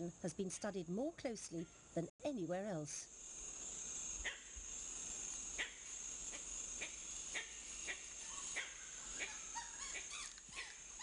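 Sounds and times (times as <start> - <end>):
high insect drone: 0.0 - 11.0
sharp animal calls: 5.6 - 11.0.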